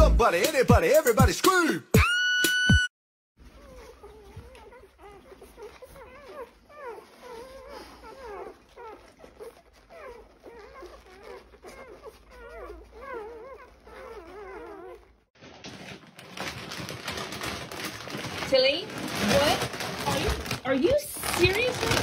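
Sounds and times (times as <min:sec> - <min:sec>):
puppies whimpering: 0:03.4 - 0:15.3.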